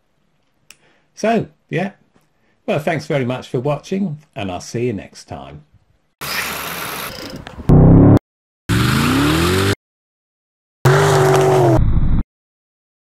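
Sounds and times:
car engine revving: 7.7 - 9.8, 10.9 - 11.8.

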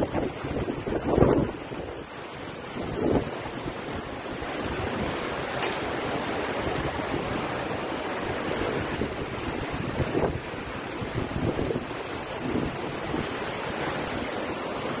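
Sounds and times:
seawater rushing across street: 0.0 - 15.0
wind buffeting microphone: 0.0 - 15.0.

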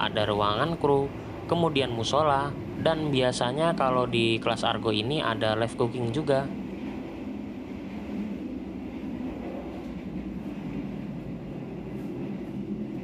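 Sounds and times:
train carriage rumbling: 0.0 - 13.0.

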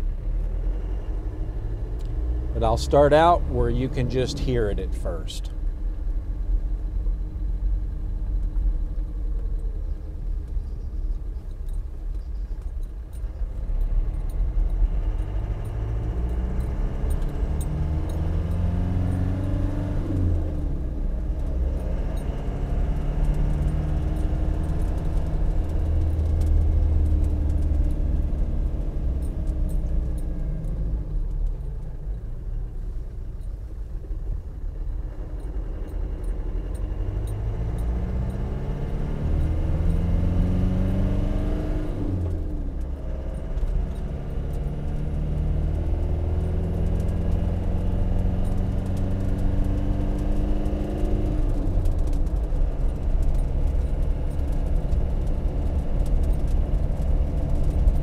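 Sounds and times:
diesel engine accelerating: 0.0 - 58.0.

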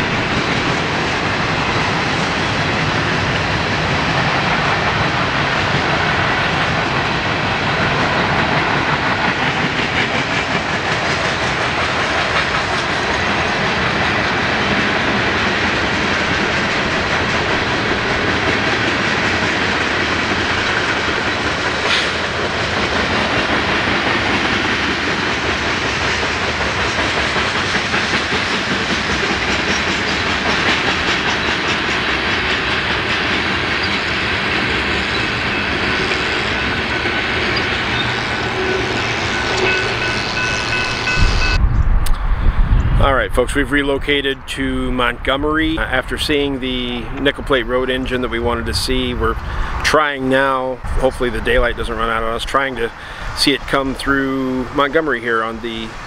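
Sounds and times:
freight train wheels on rails: 0.0 - 56.0.

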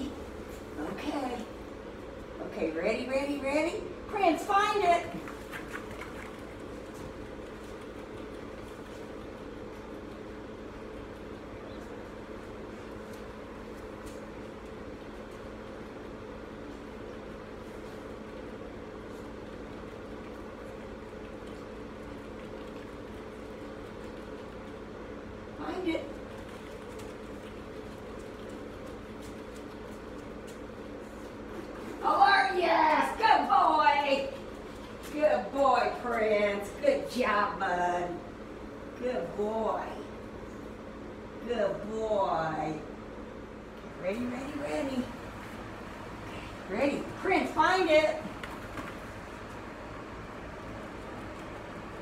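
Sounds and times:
electric fan humming: 0.0 - 52.0.

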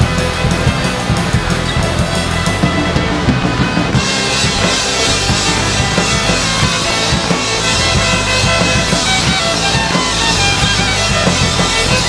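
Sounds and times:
bass guitar: 0.0 - 12.0
drum kit: 0.0 - 12.0
electric guitar: 0.0 - 12.0
bowed violin: 1.8 - 12.0.

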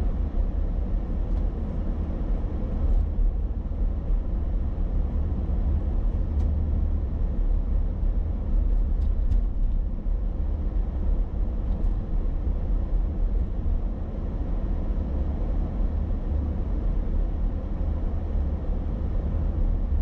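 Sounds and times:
car engine and road noise: 0.0 - 20.0.

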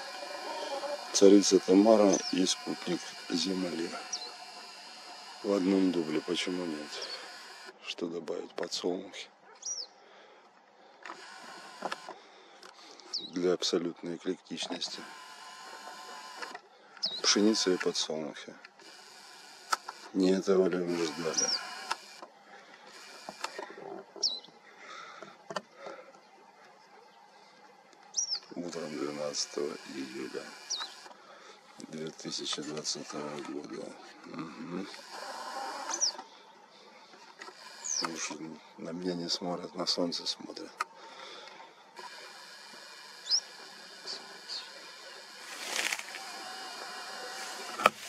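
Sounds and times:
bird chirp: 0.0 - 7.6, 9.5 - 10.0, 12.9 - 13.4, 16.9 - 17.7, 21.0 - 21.8, 24.1 - 24.6, 26.2 - 28.9, 29.8 - 31.1, 35.8 - 38.4, 43.0 - 45.5
faint outdoor background: 0.0 - 48.0.

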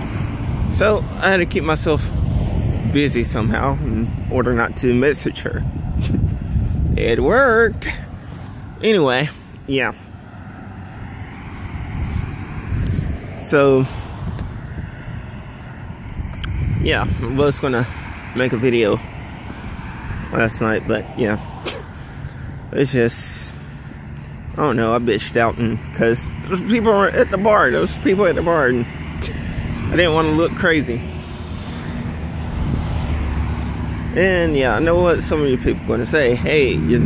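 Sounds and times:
roadside background rumble: 0.0 - 37.0.

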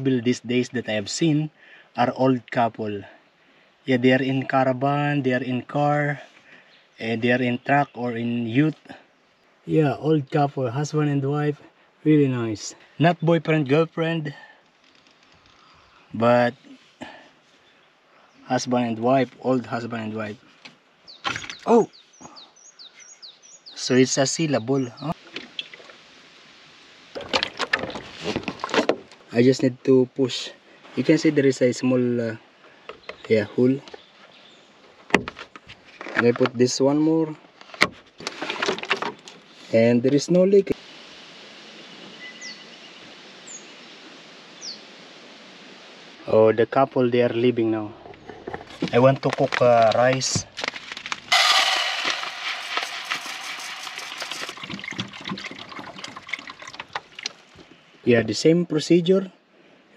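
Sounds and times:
container clicks and knocks: 50.6 - 56.1
water pouring into a pot: 51.3 - 57.3.

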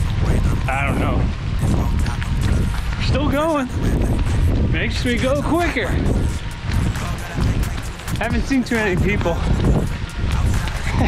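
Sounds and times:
footfalls on wet pavement: 0.0 - 11.0
wind buffeting microphone: 0.0 - 11.0.

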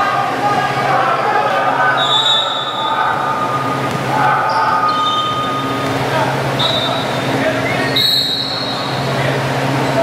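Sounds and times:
shoes squeaking on court floor: 2.0 - 9.0.

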